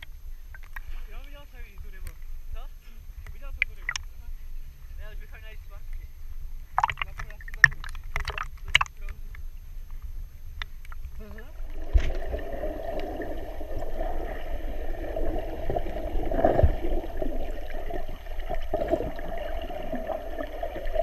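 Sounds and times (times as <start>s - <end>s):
muffled underwater rush: 0.0s - 21.0s
small waves splashing: 0.5s - 9.4s, 10.7s - 21.0s.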